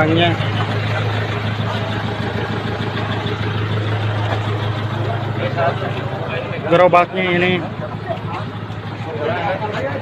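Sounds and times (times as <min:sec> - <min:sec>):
truck engine idling: 0:00.0 - 0:10.0.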